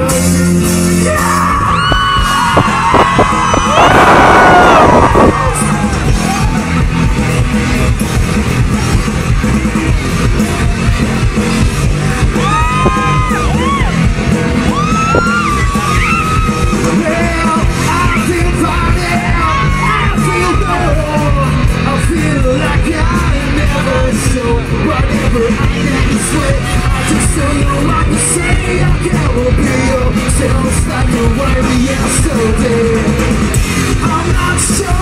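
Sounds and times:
rock band playing: 0.0s - 35.0s
person yelling and singing: 0.9s - 2.5s, 12.2s - 14.0s, 14.7s - 33.1s.

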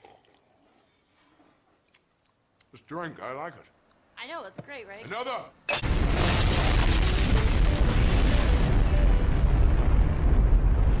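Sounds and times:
explosion rumble with hiss: 5.9s - 11.0s.

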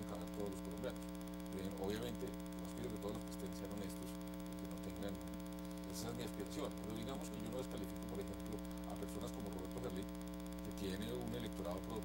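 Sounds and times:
electrical mains hum: 0.0s - 12.0s
programme audio: 0.0s - 12.0s.

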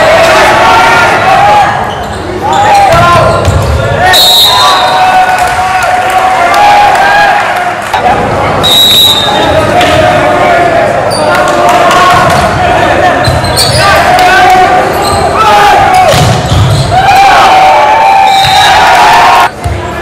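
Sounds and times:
players and crowd shouting: 0.0s - 20.0s
referee's whistle: 1.9s - 5.2s, 8.6s - 9.6s, 18.2s - 19.2s.

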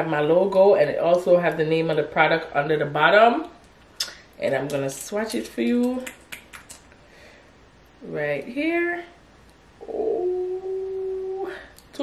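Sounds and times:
woman singing a long note: 9.8s - 11.7s.

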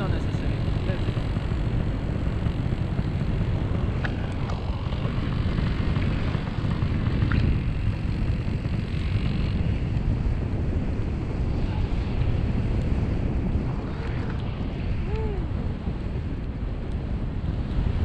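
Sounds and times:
engine and propeller running: 0.0s - 18.0s
wind rushing over microphone: 0.0s - 18.0s.

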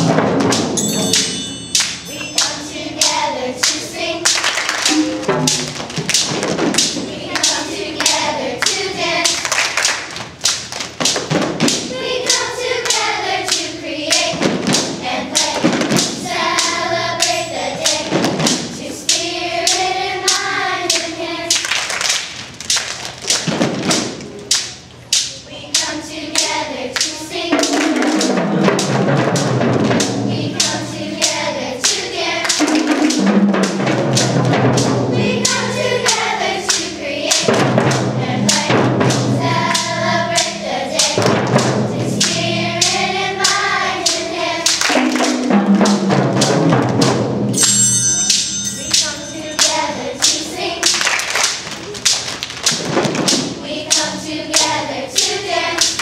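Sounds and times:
children's choir singing: 0.0s - 10.6s, 11.4s - 22.1s, 23.5s - 52.1s, 52.7s - 56.0s
hand drums and claps: 0.0s - 47.2s, 48.3s - 56.0s
high ringing note: 0.8s - 3.0s, 47.5s - 50.7s.

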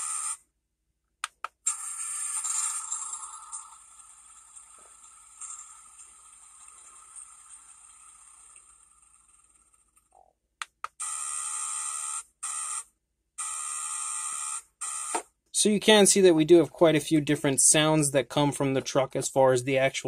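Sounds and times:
toy truck sound effects: 1.5s - 10.1s, 10.9s - 15.2s.

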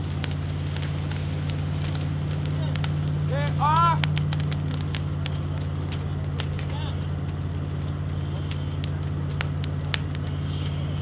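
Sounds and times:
fire crackling and popping: 0.0s - 11.0s
fire engine motor droning: 0.0s - 11.0s.

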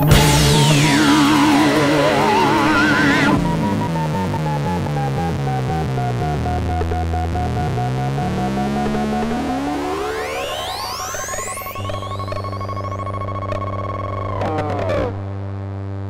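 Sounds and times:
low drone under held tone: 0.0s - 6.2s
rising synthesizer sweep: 0.0s - 6.4s.

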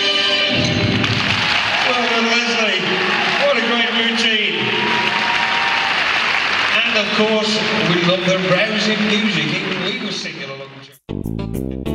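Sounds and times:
audience applauding: 0.9s - 10.8s
man talking: 1.8s - 4.8s, 6.7s - 11.0s.

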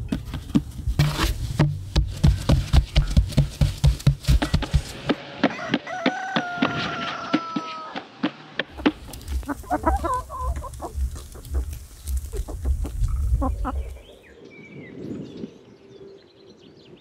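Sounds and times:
hens clucking: 8.6s - 14.2s.

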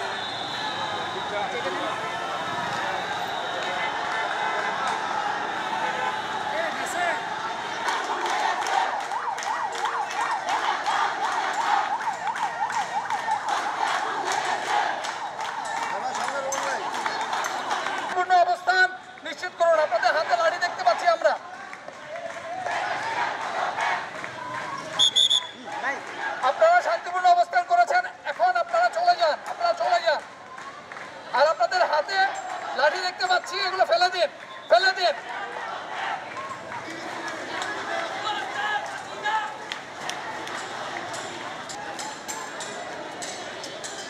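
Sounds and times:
man speaking through megaphone: 0.0s - 7.5s, 15.7s - 22.6s, 25.6s - 30.4s, 31.2s - 35.6s, 37.0s - 39.7s
noisy street crowd: 0.0s - 44.0s
fast yelping siren: 8.8s - 13.8s.

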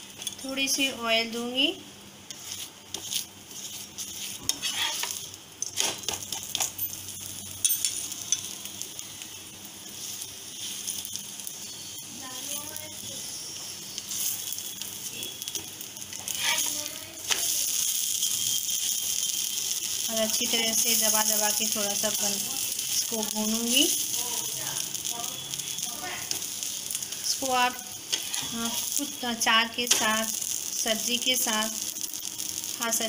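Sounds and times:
oil sizzling in a pan: 0.0s - 33.0s
spatula scraping and tapping pan: 2.3s - 6.8s, 15.4s - 21.4s, 28.1s - 29.0s.

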